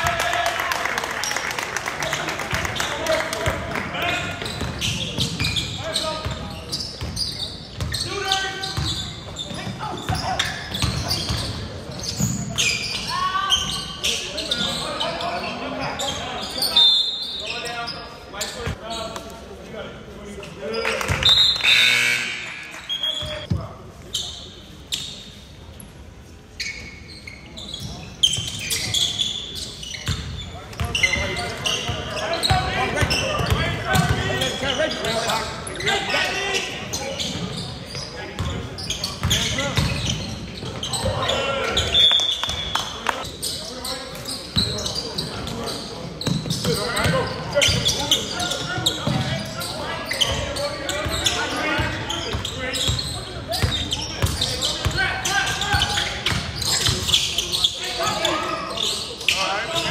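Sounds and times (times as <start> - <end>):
echoing voices of players and spectators: 0.0 - 26.6, 27.4 - 59.9.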